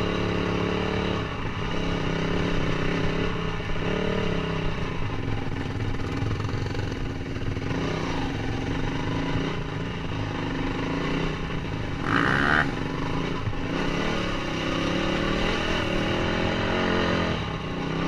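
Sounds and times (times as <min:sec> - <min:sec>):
dirt bike engine: 0:00.0 - 0:18.0.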